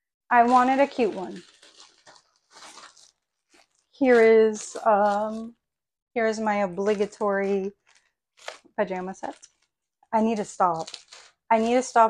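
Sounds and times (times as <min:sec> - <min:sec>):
plastic packaging crinkling: 0:00.3 - 0:05.6, 0:06.6 - 0:12.0.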